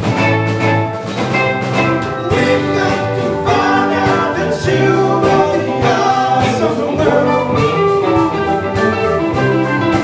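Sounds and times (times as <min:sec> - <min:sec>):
live rock band playing: 0:00.0 - 0:10.0
voices singing in harmony: 0:02.2 - 0:08.6.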